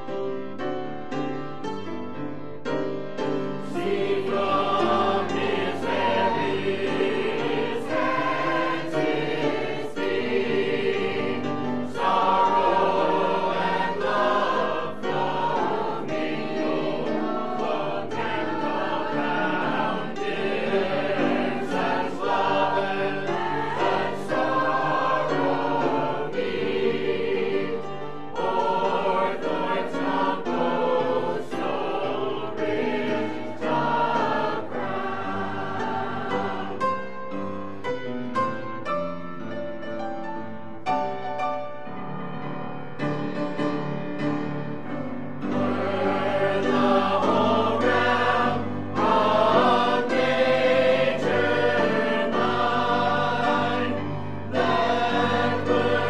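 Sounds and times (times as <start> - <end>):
mixed choir singing: 2.8 - 37.8, 45.2 - 56.0.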